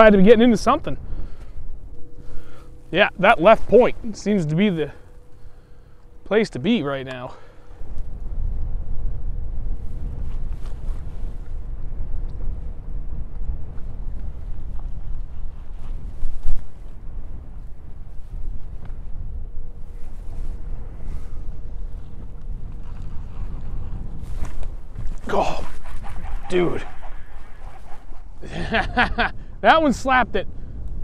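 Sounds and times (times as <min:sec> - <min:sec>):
faint steady hum: 0:00.0 - 0:31.0
wind buffeting microphone: 0:00.0 - 0:31.0.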